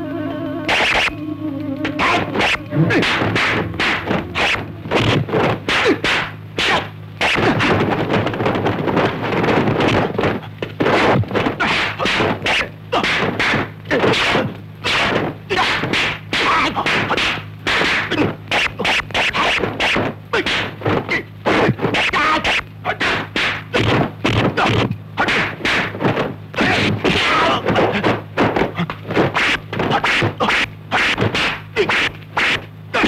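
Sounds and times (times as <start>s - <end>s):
punch and block whacks: 2.4s - 33.0s.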